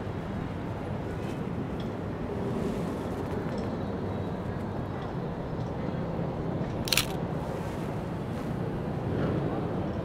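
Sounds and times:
low city hum: 0.0 - 10.0
camera shutter click: 6.9 - 7.2.

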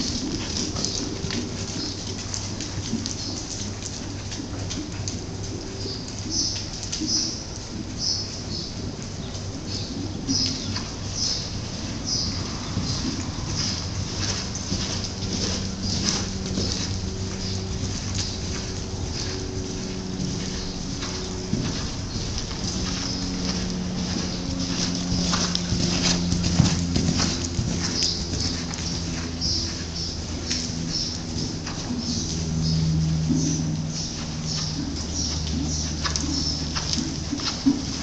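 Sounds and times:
hoofbeats on sand: 0.0 - 38.0
low steady hum: 0.0 - 38.0
small birds chirping: 0.0 - 38.0.

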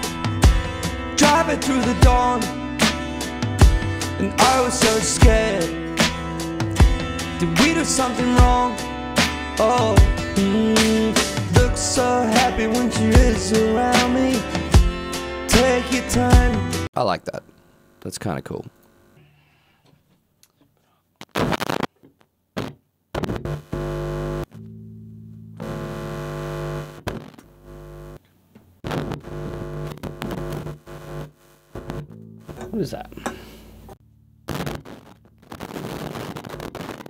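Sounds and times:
rough crackly noise: 21.2 - 24.5, 28.8 - 32.6, 34.5 - 37.0
electric bass low notes: 23.8 - 27.0.

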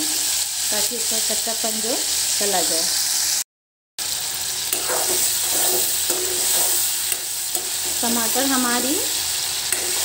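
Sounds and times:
vegetables sizzling in hot oil: 0.0 - 3.4, 4.0 - 10.0.

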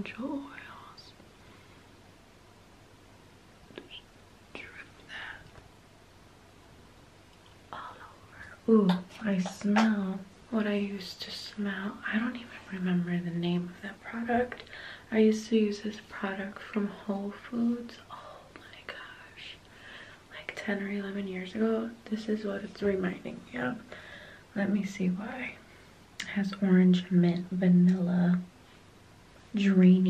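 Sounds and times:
woman whispering: 0.0 - 1.2, 3.7 - 5.5, 7.7 - 19.6, 20.3 - 23.9.

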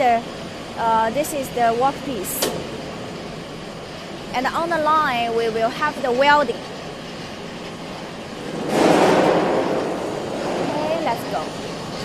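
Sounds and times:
factory machinery running: 0.0 - 12.0
loud rushing noise: 7.8 - 12.0.

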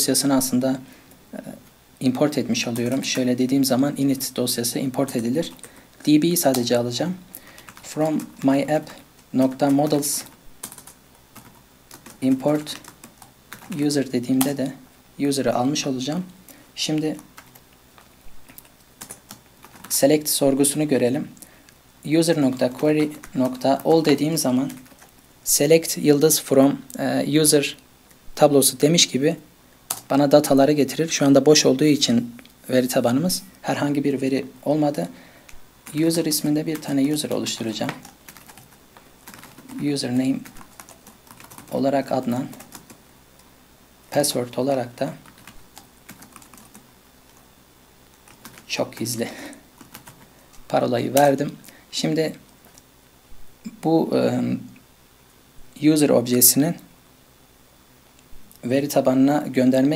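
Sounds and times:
computer keyboard typing: 2.2 - 14.7, 16.8 - 20.9, 22.2 - 25.1, 29.9 - 30.5, 35.8 - 43.0, 45.0 - 47.4, 48.1 - 51.3.

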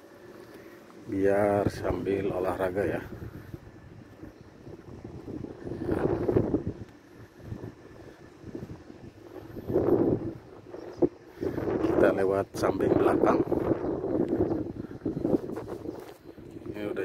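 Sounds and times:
wind buffeting microphone: 1.0 - 17.0.

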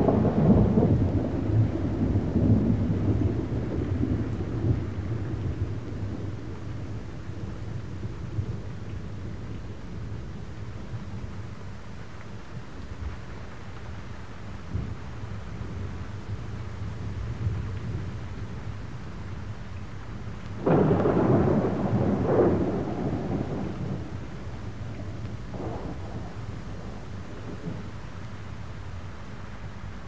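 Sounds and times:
thunder: 0.0 - 8.8, 14.7 - 15.0, 20.6 - 28.0
rain hiss: 0.0 - 30.0.

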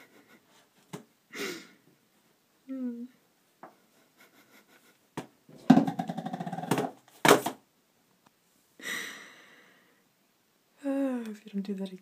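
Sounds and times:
cardboard box knocking: 5.7 - 7.6.

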